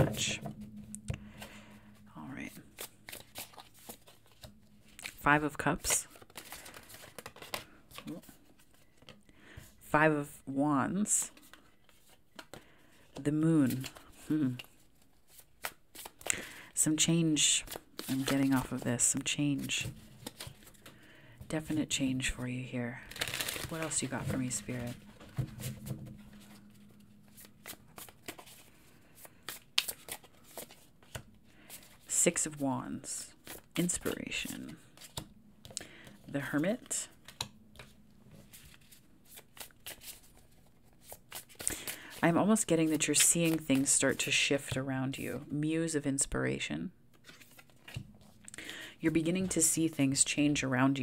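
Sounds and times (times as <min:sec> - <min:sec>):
cards being shuffled: 0:02.5 - 0:09.2, 0:11.2 - 0:16.5, 0:17.4 - 0:21.0, 0:23.1 - 0:32.1, 0:33.3 - 0:44.3, 0:47.1 - 0:48.4.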